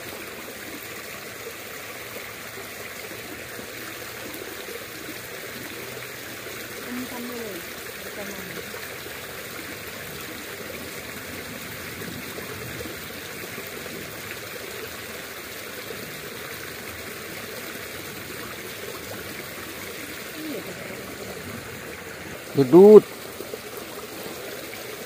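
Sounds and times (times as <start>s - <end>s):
creek water flowing: 0.0s - 25.0s.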